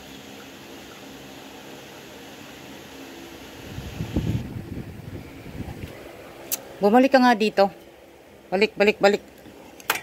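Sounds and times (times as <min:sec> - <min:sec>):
mechanical hum: 0:00.0 - 0:10.0.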